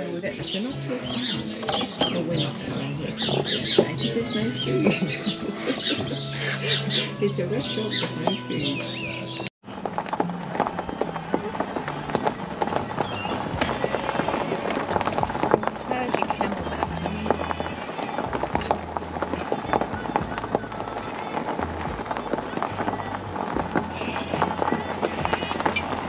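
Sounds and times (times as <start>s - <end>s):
background music with bass line: 0.0s - 26.0s
car tyres rolling over gravel: 0.0s - 26.0s.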